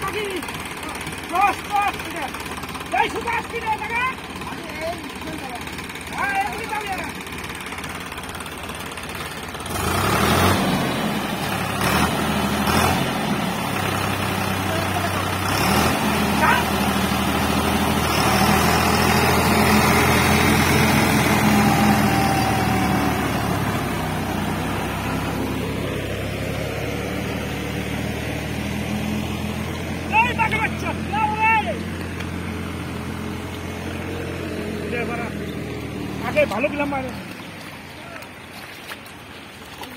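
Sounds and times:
tractor engine revving: 0.0 - 38.8.

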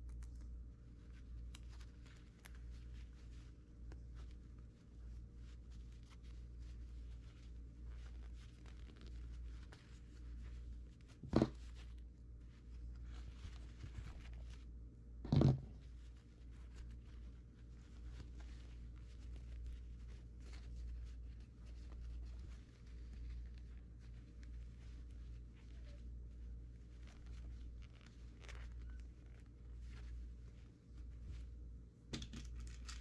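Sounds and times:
steady low hum: 0.0 - 33.0
canvas fabric rustling: 0.8 - 14.9, 15.6 - 33.0.

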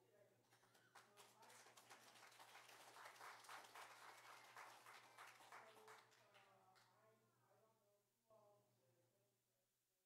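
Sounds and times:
congregation applauding: 0.6 - 6.2.

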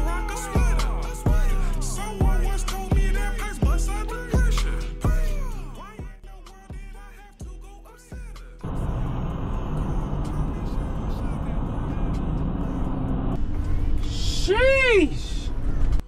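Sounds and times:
vehicle road and engine noise: 8.1 - 16.0.

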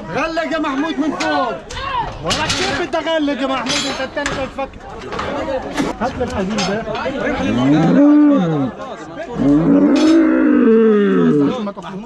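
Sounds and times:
bull mooing: 7.4 - 8.7, 9.4 - 11.7.

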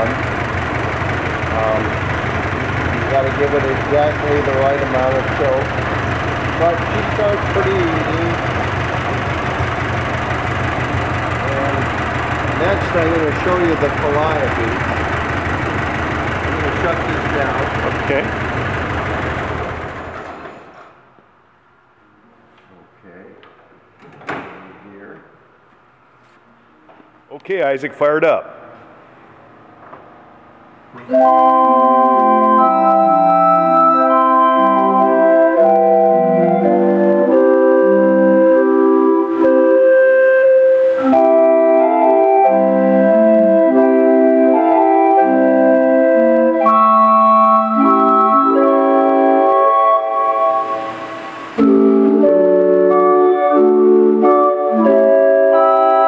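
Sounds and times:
calliope playing a tune: 0.0 - 19.8, 31.0 - 56.0
truck engine idle shutting off: 0.0 - 21.1, 32.3 - 55.3.

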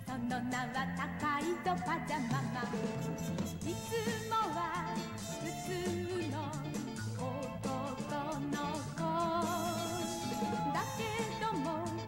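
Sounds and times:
pop song with singing and band: 0.0 - 12.0.

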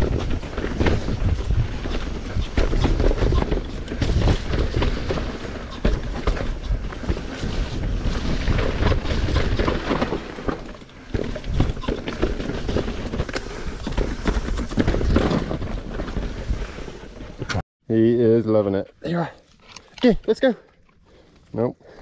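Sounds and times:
wind rumbling on microphone: 0.0 - 10.1
bike rattling and knocking: 0.0 - 17.6
bike tyres on dirt: 0.0 - 17.6.

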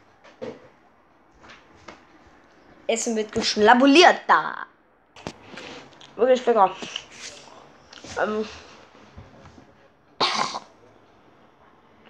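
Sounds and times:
boy coughing: 10.2 - 10.7.

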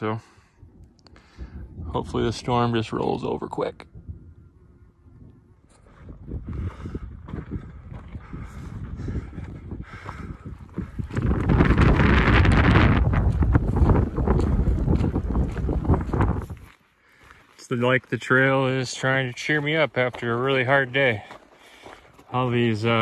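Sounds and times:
wind buffeting microphone: 0.0 - 17.3.

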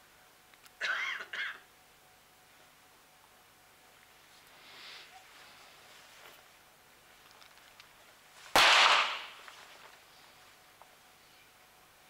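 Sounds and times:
pistol shot with echo: 8.6 - 9.4.

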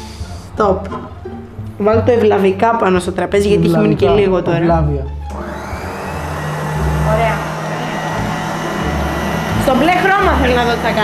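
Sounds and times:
stand mixer motor running: 5.2 - 11.0.

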